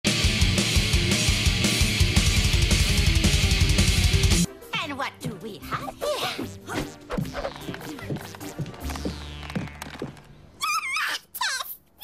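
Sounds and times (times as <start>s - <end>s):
distorted electric guitar: 0.1s - 4.5s.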